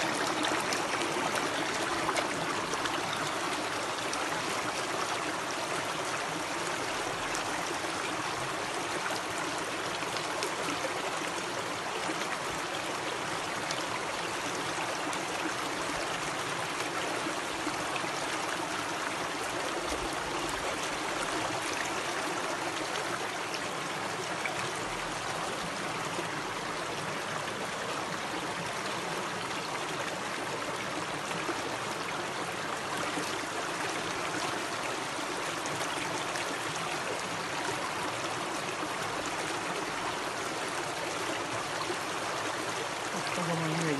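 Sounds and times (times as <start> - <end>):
stream water running over stones: 0.0 - 43.9.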